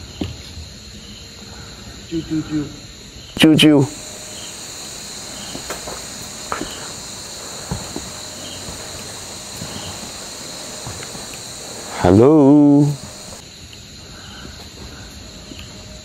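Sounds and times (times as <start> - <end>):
crickets and night insects: 0.0 - 16.0
faint knocks: 4.0 - 12.0.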